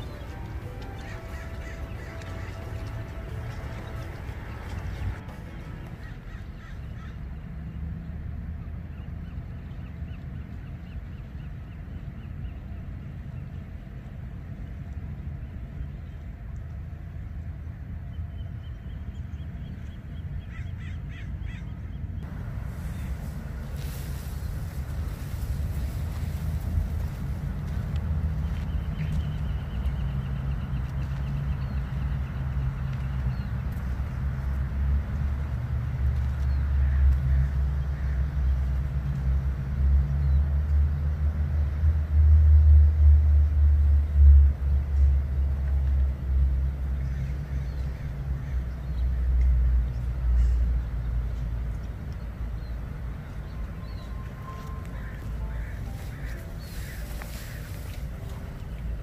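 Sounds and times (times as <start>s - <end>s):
low engine rumble: 0.0s - 20.5s, 21.9s - 59.0s
crow cawing: 0.8s - 4.8s, 6.0s - 7.2s.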